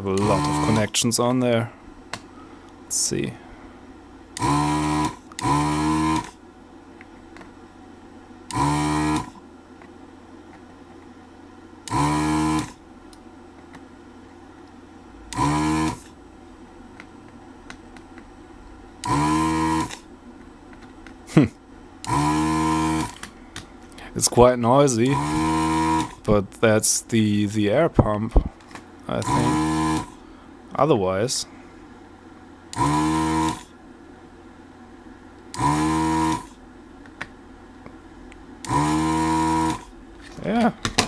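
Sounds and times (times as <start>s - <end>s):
vacuum pump buzzing: 0.0s - 1.1s, 4.2s - 9.6s, 11.0s - 13.3s, 14.4s - 26.8s, 28.0s - 30.7s, 32.2s - 33.9s, 34.5s - 41.0s
steady low hum: 0.0s - 41.0s.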